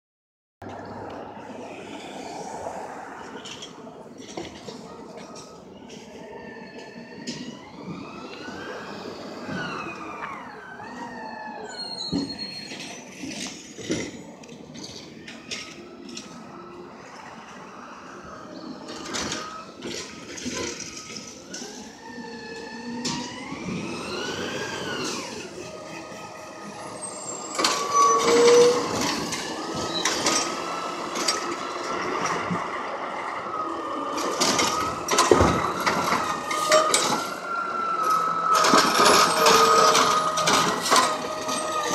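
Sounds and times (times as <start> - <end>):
garbage truck hydraulic whine: 0.6 - 41.9.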